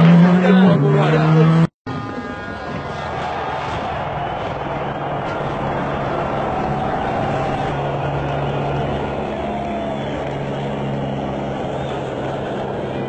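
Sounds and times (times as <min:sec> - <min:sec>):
vehicle engine droning: 0:00.0 - 0:13.0
dense wash of noise: 0:02.9 - 0:13.0.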